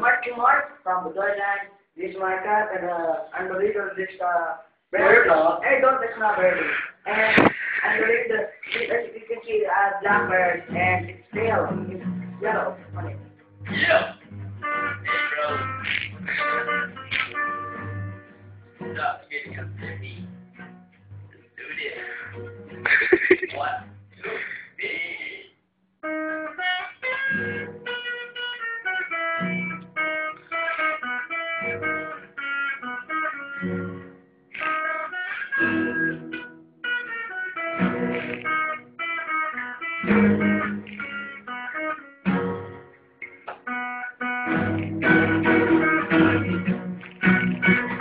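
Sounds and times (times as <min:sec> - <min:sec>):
acoustic guitars playing: 0:00.0 - 0:04.2, 0:04.9 - 0:25.4, 0:26.0 - 0:48.0
boys talking: 0:05.0 - 0:14.1.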